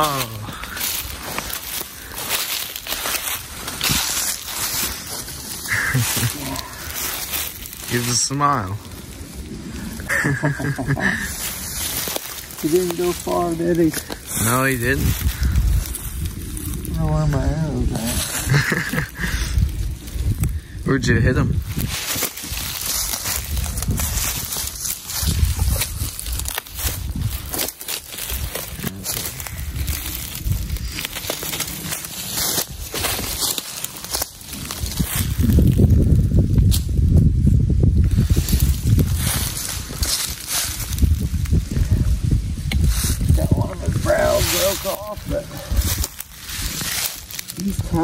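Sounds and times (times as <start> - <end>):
voices: 0.0 - 9.0, 9.8 - 16.0, 16.7 - 19.6, 28.5 - 32.6, 43.3 - 46.1, 47.5 - 48.0
dry leaves rustling and crackling: 0.0 - 48.0
low microphone rumble: 0.0 - 48.0.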